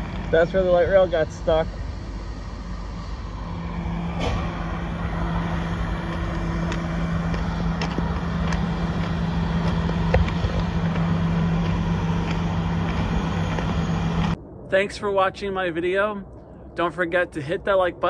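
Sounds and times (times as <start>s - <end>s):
low mechanical hum: 0.0s - 14.9s
rushing background noise: 0.0s - 18.0s.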